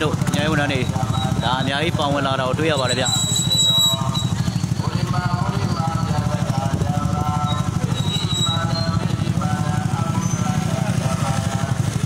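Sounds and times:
crowd voices: 0.0s - 12.0s
motorcycle engine running: 0.0s - 12.0s.

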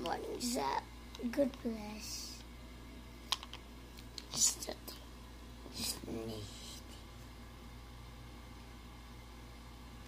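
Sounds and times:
person whispering: 5.7s - 7.1s.

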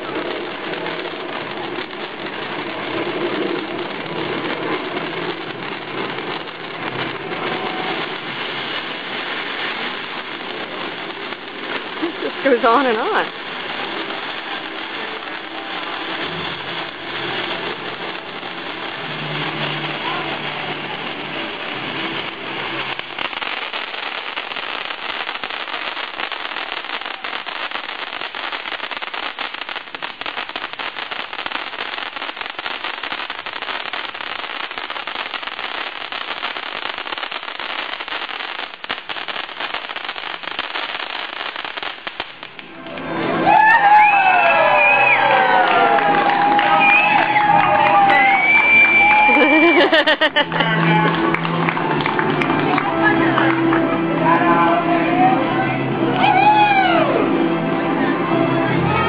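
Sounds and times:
crowd cheering: 0.0s - 28.0s, 42.6s - 59.0s
firework crackling hiss: 0.0s - 59.0s.

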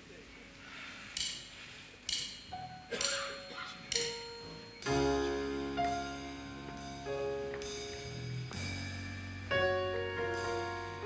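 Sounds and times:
light cymbal strikes: 1.1s - 11.0s
soft piano notes: 2.1s - 11.0s.

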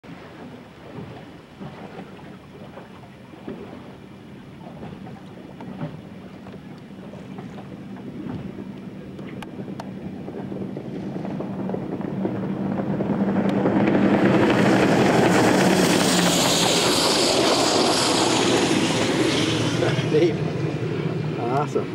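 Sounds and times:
powerboat engine passing: 0.0s - 21.9s
wind on microphone: 0.1s - 21.9s
rushing spray: 14.5s - 21.4s.

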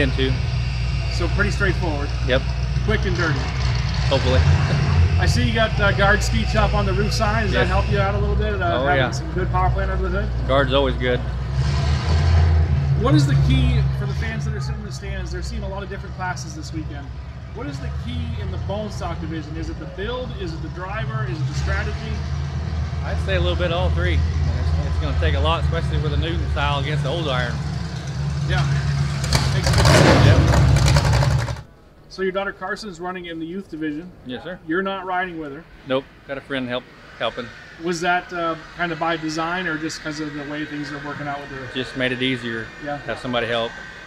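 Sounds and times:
steady low drone: 0.0s - 31.6s, 35.6s - 44.0s
vehicle engine rumble: 0.0s - 32.1s.

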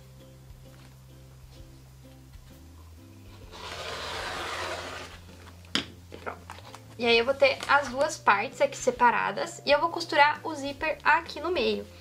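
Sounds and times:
faint background music: 0.0s - 12.0s
rotary cutter slicing fabric: 3.5s - 5.2s.

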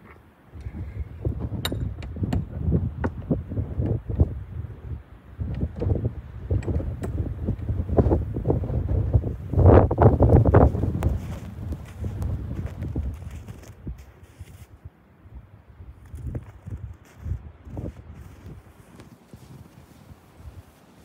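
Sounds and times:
wind rumbling on microphone: 0.0s - 21.0s
footsteps crunching through snow: 9.8s - 14.8s, 15.9s - 21.0s.

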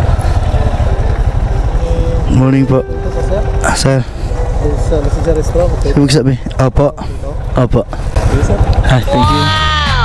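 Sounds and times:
motorcycle engine running: 0.0s - 10.0s.

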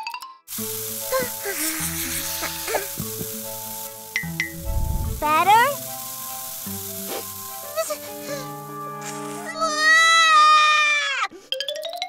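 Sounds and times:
soft background music: 0.5s - 10.8s
cartoon baby crying: 9.5s - 11.3s.

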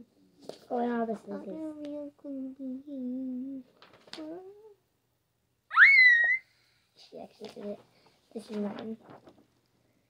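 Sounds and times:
girl's high-pitched squeal: 5.7s - 6.5s.

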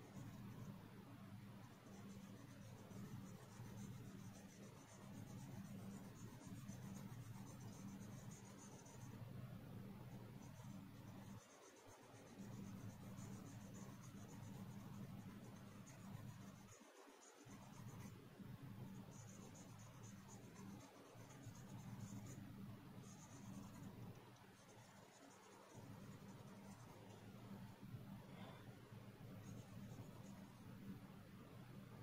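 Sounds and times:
pencil scratching on paper: 0.0s - 0.8s, 1.4s - 9.2s, 10.0s - 18.2s, 18.8s - 27.4s, 29.2s - 30.8s
low steady hum: 0.0s - 32.0s.

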